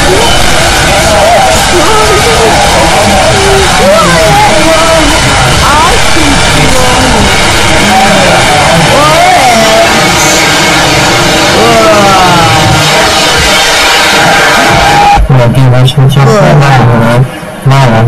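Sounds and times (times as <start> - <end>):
voices sliding in pitch: 0.0 - 15.1
music: 0.0 - 15.4
constant heavy noise: 0.0 - 18.0.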